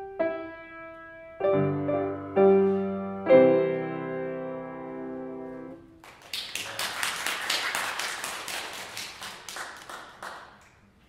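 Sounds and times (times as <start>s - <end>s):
small audience applauding: 6.0s - 11.0s.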